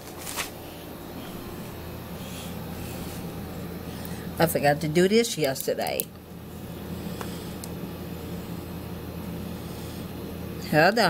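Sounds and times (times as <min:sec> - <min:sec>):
air conditioning fan whooshing: 0:00.0 - 0:11.0.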